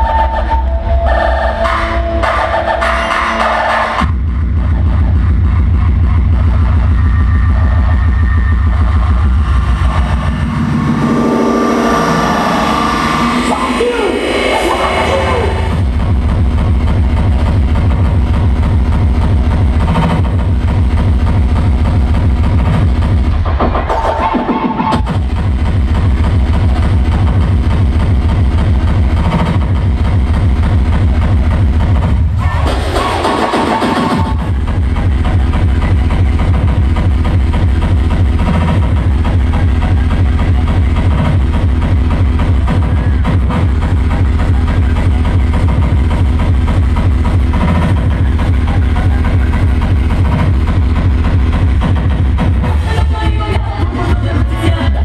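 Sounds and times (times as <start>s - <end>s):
synth lines: 6.4s - 23.1s
falling low sweep: 8.6s - 16.1s
fast kick drum: 15.4s - 23.9s, 25.0s - 55.0s.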